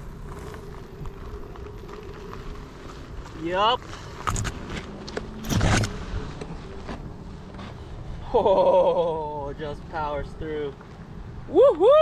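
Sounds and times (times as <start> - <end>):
electric hub motor whine: 0.0 - 8.0
tyre crunching over loose dirt: 0.0 - 8.6.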